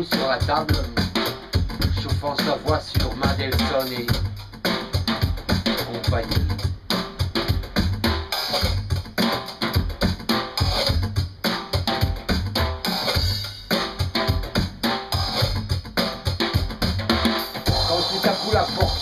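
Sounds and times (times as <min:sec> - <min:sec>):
drum kit played with sticks: 0:00.0 - 0:19.0.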